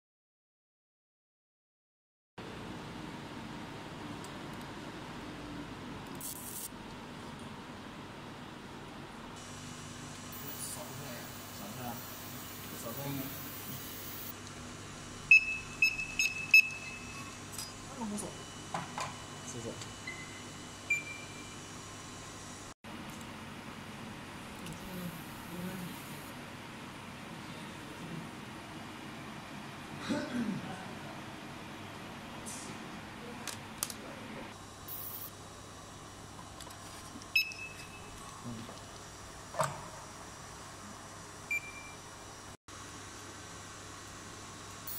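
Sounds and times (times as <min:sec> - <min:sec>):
scanner beep: 0:10.4 - 0:14.3, 0:15.3 - 0:17.4, 0:20.0 - 0:21.6, 0:37.4 - 0:38.2
high-pitched electronic beeps: 0:13.2 - 0:14.3, 0:15.3 - 0:17.4.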